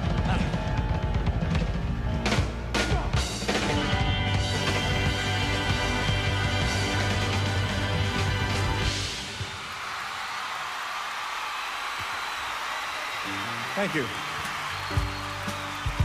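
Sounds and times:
live band and orchestra: 0.0 - 9.4
audience applauding and cheering: 6.7 - 16.0.

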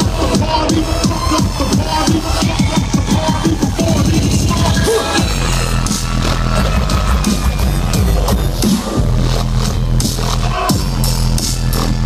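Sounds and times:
dubstep over a sound system: 0.0 - 12.0.

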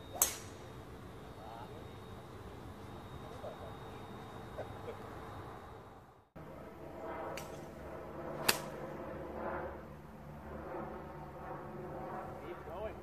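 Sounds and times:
golf club striking ball: 0.1 - 0.7, 8.4 - 8.8.

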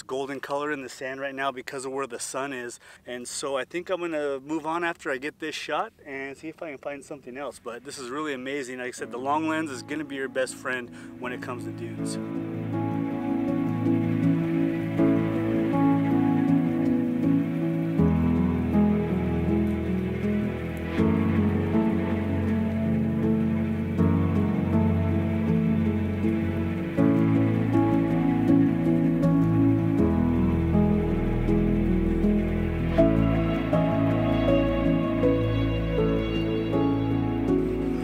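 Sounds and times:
slow sustained chords music: 8.9 - 38.0.

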